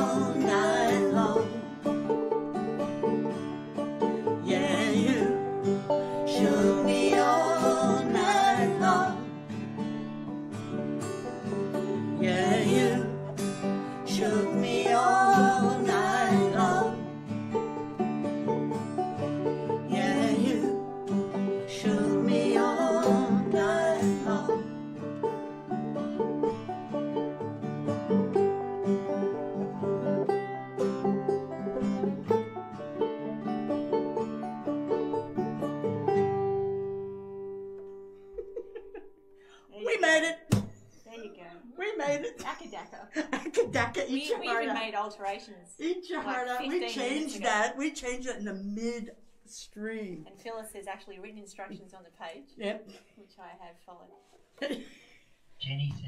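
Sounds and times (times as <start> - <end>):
voices singing: 0.0 - 1.9, 4.2 - 9.4, 11.9 - 17.1, 19.8 - 24.7
banjo: 0.0 - 40.7, 42.0 - 45.4, 46.0 - 47.8
acoustic guitar: 0.0 - 56.0.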